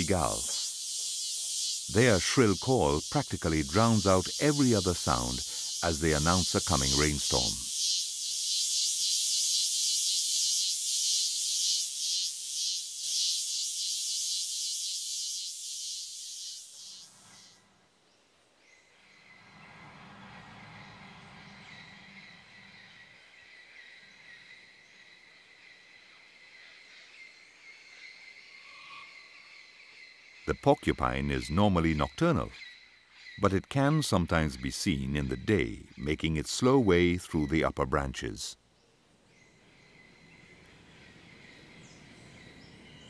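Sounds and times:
cicada buzzing: 0:00.0 - 0:17.6
thin high drone: 0:00.0 - 0:17.6.

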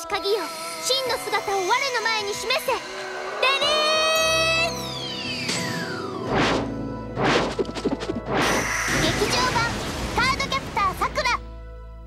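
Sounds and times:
background music: 0:00.0 - 0:12.0
whoosh and hit sound effects: 0:06.2 - 0:09.6.

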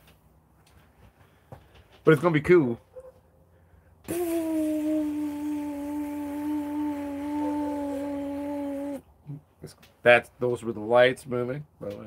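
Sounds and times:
man humming long note: 0:04.1 - 0:09.0.

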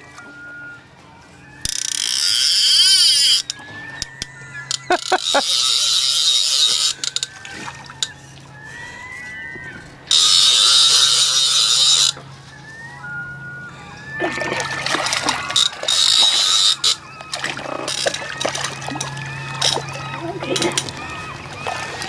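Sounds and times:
fishing reel ratchet buzzing: 0:01.7 - 0:08.2, 0:10.1 - 0:12.2, 0:14.9 - 0:22.0
fish splashing: 0:01.7 - 0:12.2, 0:14.1 - 0:22.0.

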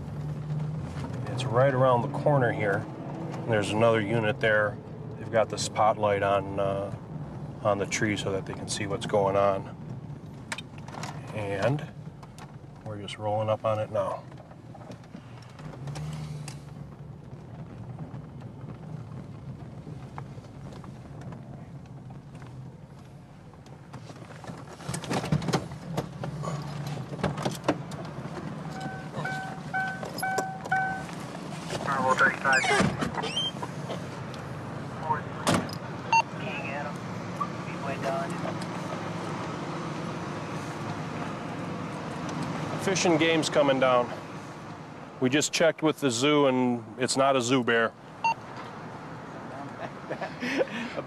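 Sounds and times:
car engine idling: 0:03.4 - 0:51.0
car doors clunking: 0:24.3 - 0:34.1
door chime beeping: 0:28.8 - 0:31.1.

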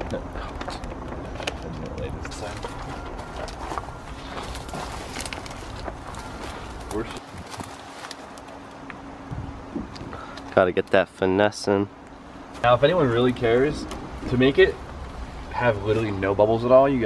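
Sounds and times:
small crackles: 0:00.0 - 0:08.8
vinyl sheet crinkling and rustling: 0:00.4 - 0:08.8.

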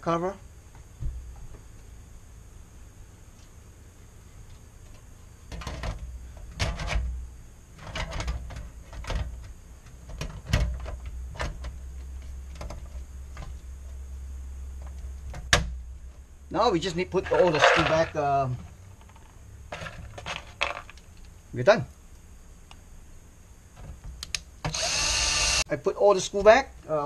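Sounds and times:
metal knocks and scrapes: 0:17.2 - 0:20.9.

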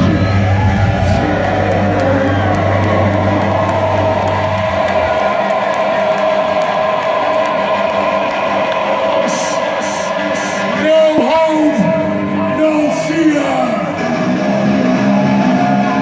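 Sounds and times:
crowd cheering: 0:00.0 - 0:16.0.

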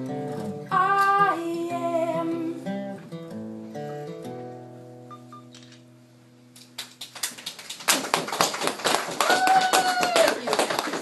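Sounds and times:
acoustic guitar chord ringing: 0:00.0 - 0:06.5
group applause: 0:06.8 - 0:11.0.

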